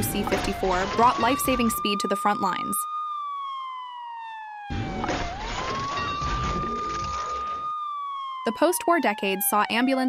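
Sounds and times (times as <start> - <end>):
siren wailing: 0.0 - 10.0.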